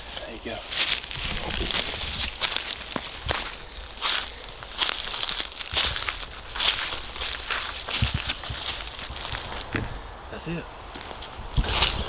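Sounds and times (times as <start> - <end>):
metal rake scraping dirt and leaves: 11.6 - 12.0.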